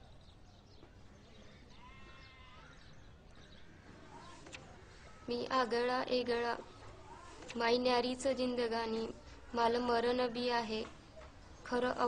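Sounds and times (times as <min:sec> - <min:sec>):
faint animal bleat: 0:01.4 - 0:02.9.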